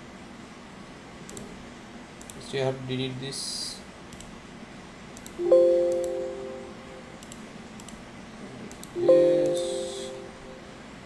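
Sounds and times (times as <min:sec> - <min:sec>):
faint mouse clicks: 0:01.2 - 0:01.5, 0:02.2 - 0:02.4, 0:04.1 - 0:04.3, 0:05.2 - 0:06.2, 0:07.2 - 0:08.0, 0:08.7 - 0:09.7
system alert chime: 0:05.4 - 0:07.1, 0:09.0 - 0:10.6.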